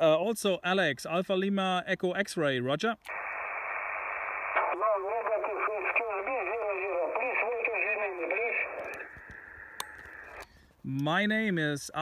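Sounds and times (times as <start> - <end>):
distant voice over shortwave radio: 3.1 - 10.3
static hiss: 3.1 - 10.4.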